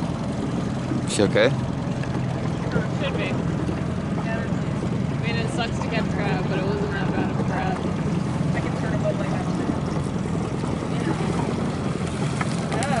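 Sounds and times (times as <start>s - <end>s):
boat motor droning: 0.0s - 13.0s.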